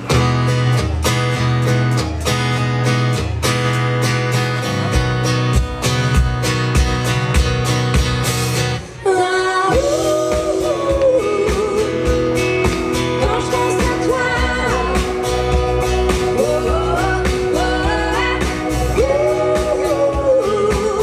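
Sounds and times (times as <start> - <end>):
pop-rock band playing: 0.0 - 21.0
woman singing: 8.9 - 21.0.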